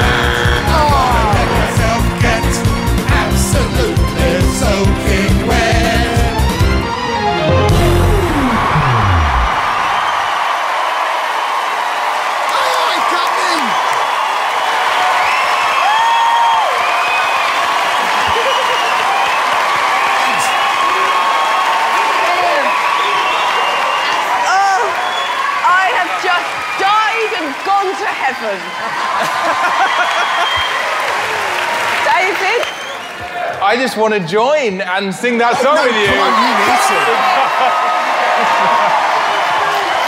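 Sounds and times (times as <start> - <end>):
audience cheering and applauding: 0.0 - 34.4, 35.4 - 40.0
screams and whoops: 8.2 - 27.5, 28.6 - 31.8, 35.8 - 40.0.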